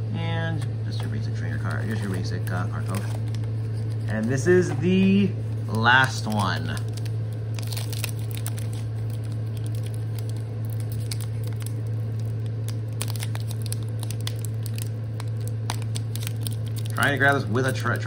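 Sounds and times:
steady low hum: 0.0 - 18.0
foil wrapper crinkling: 1.5 - 4.6, 5.4 - 18.0.

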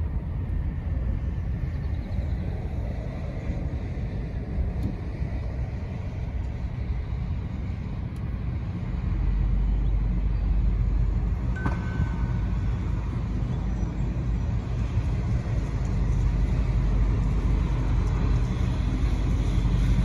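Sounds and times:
car cabin rumble: 11.6 - 12.6.

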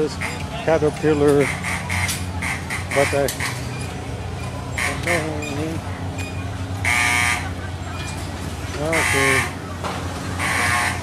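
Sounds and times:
low hum of machinery: 0.0 - 11.0
voices: 0.0 - 11.0.

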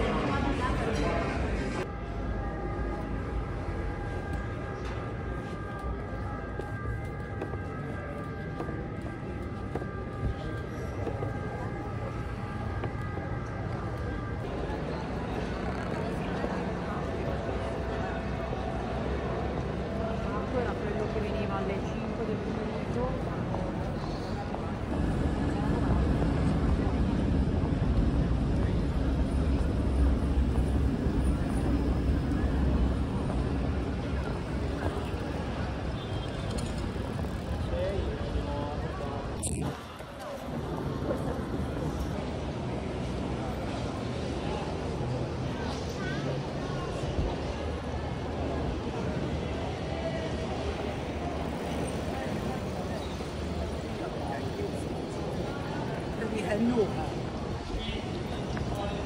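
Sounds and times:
faint crowd voices: 0.0 - 59.0
low city street rumble: 0.0 - 59.0
passers-by talking: 0.0 - 59.0.

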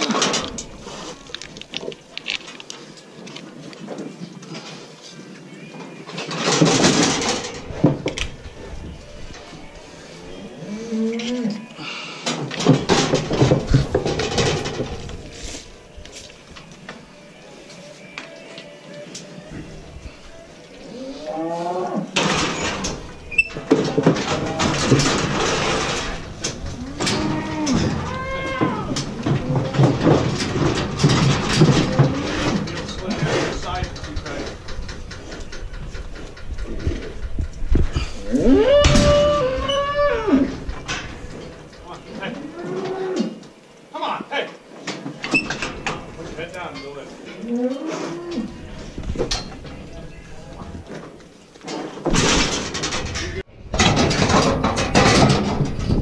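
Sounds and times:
knocks and rattles: 6.2 - 8.3, 12.2 - 15.3, 22.2 - 42.5, 50.6 - 56.0
cattle mooing: 26.7 - 29.8, 38.3 - 40.5.

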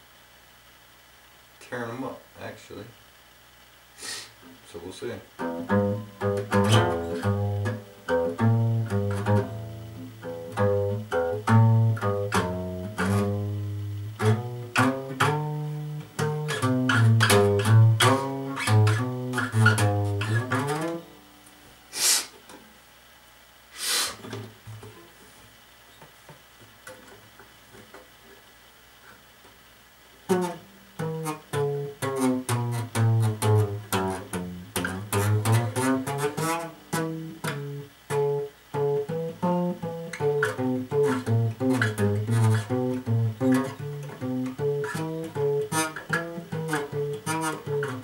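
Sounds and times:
finger-picked acoustic guitar: 5.4 - 21.7, 30.1 - 48.0.

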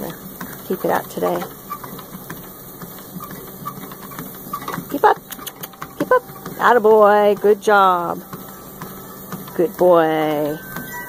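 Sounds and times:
treadmill motor hum: 0.0 - 11.0
dog paws ticking on belt: 0.3 - 11.0.

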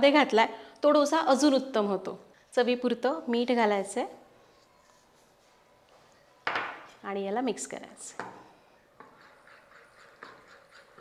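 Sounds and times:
spoon stirring batter in glass bowl: 8.9 - 11.0.

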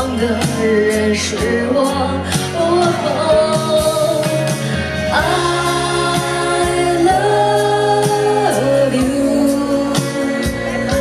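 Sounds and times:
live band accompaniment: 0.0 - 11.0
woman singing a pop ballad: 0.0 - 11.0.

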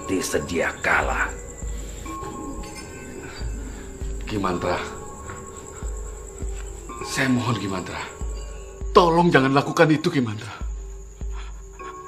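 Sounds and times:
background music drone: 0.0 - 12.0
cricket trill: 0.0 - 12.0.

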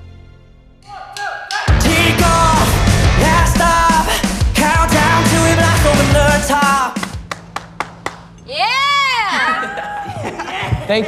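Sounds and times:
rock song: 1.7 - 7.4
hand claps: 6.9 - 8.4
high whooping cheer: 8.5 - 10.3.

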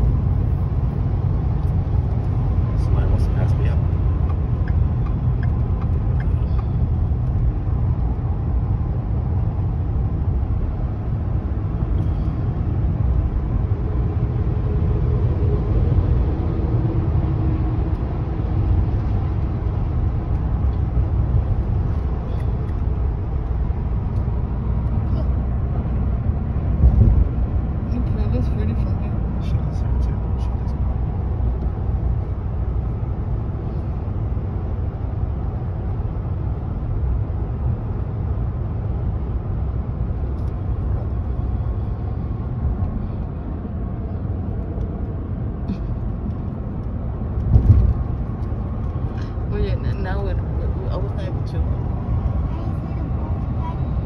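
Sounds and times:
road and engine rumble inside truck: 0.0 - 54.0.

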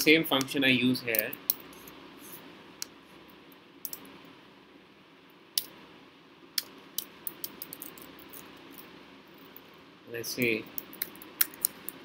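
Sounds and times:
faint steady background hiss: 0.0 - 12.0.

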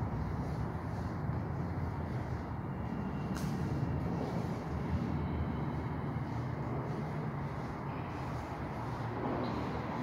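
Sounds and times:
subway station rumble: 0.0 - 10.0.

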